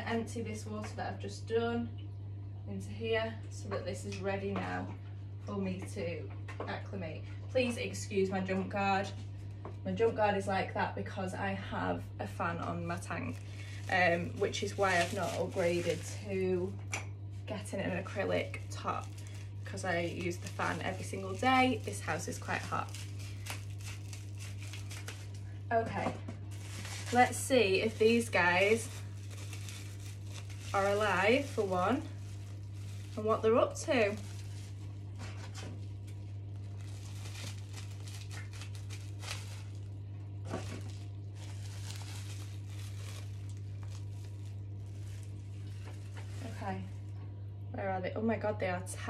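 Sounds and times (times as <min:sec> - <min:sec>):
steady low hum: 0:00.0 - 0:49.0
crinkling of things handled: 0:12.6 - 0:47.3.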